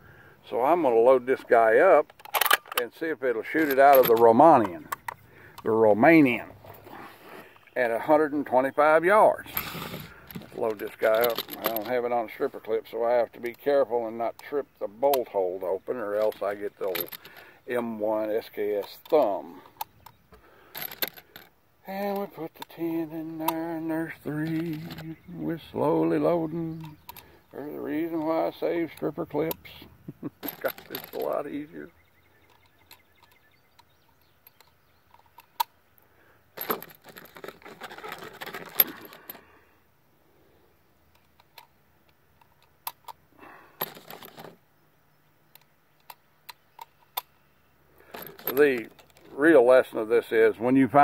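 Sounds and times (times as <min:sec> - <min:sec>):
cartridges clicking into magazine: 0:02.1 - 0:02.9
rattling and rustling: 0:09.4 - 0:12.6, 0:16.0 - 0:17.5, 0:18.4 - 0:21.6, 0:23.4 - 0:31.8, 0:36.6 - 0:39.6, 0:43.7 - 0:44.6, 0:48.0 - 0:49.5.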